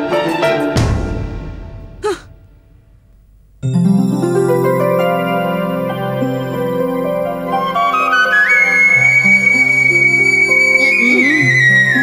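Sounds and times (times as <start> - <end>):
sigh-like vocal sound: 2.0 - 2.3.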